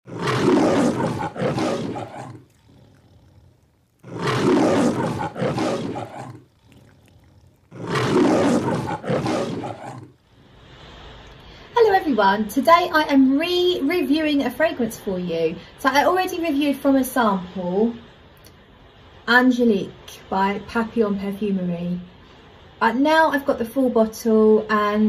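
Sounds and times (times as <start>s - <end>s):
lion roaring: 0.0s - 10.2s.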